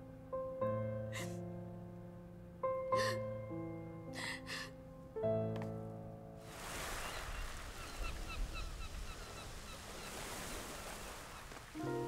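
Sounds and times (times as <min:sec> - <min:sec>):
background music: 0:00.0 - 0:06.7, 0:11.8 - 0:12.0
bird chirping: 0:07.0 - 0:10.2.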